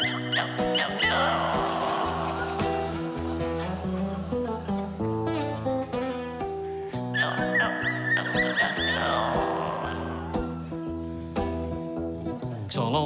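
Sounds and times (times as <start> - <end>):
high wavering wail: 0.0 - 6.0, 7.1 - 10.9
acoustic guitar picking: 0.0 - 12.7.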